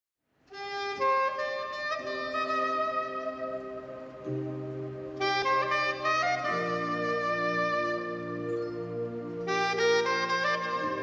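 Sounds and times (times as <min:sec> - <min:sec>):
band playing reedy chords: 0:00.9 - 0:11.0.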